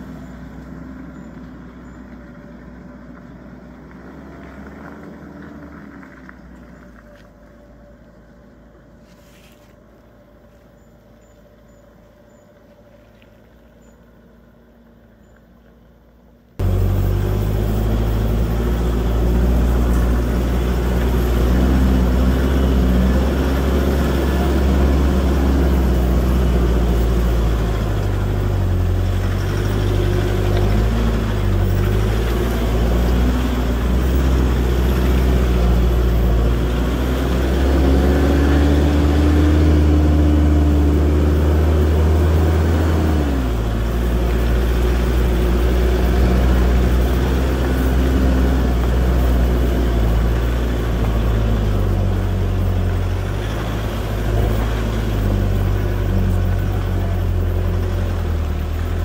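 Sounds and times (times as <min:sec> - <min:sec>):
low engine drone: 0:00.0 - 0:59.0
tyres on dirt track: 0:00.0 - 0:59.0.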